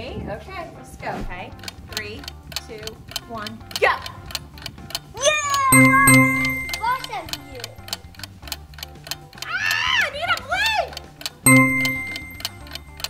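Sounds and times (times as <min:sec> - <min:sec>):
rapid clock ticking: 0:01.6 - 0:13.0
loud held tone: 0:05.7 - 0:07.7, 0:11.5 - 0:12.6.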